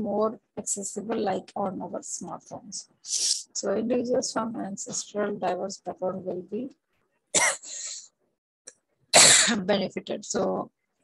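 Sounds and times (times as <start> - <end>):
person coughing: 7.4 - 8.0, 9.2 - 9.6.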